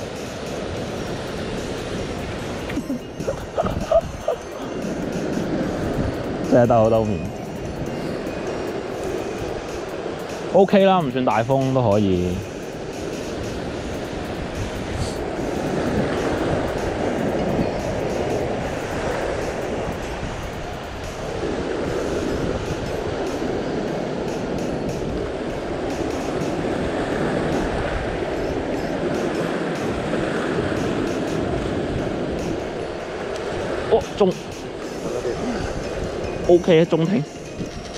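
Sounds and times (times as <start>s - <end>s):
ocean surf over rocks: 0.0s - 37.9s.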